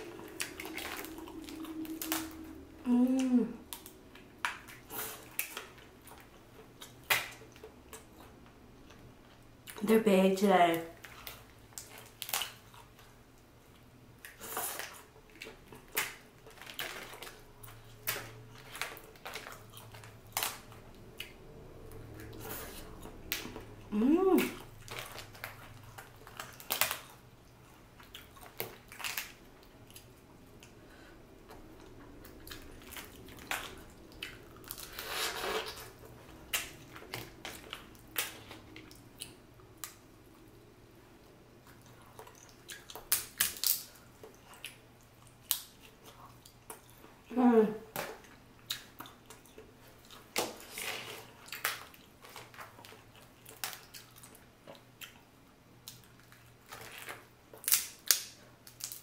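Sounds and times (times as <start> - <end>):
sucking and chewing: 0.0 - 9.8, 10.9 - 40.6, 41.2 - 47.3, 48.0 - 59.0
person humming: 1.6 - 3.7, 23.9 - 24.6
shells cracking and snapping: 42.9 - 44.0, 55.9 - 59.0.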